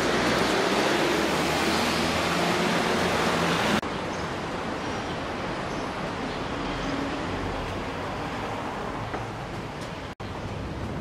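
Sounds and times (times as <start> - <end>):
loud rushing noise: 0.0 - 3.8.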